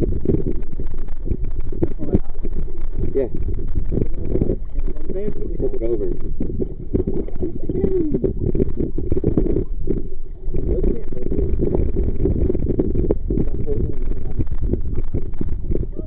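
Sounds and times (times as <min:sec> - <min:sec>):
sea water sloshing against camera: 0:00.0 - 0:16.0
muffled voices talking: 0:04.2 - 0:06.2, 0:10.6 - 0:11.6.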